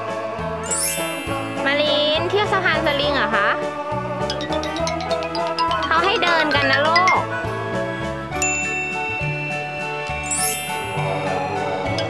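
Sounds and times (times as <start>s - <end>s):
music of held notes: 0.6s - 12.0s
bright bell-like ding: 0.7s - 2.6s, 8.4s - 11.4s.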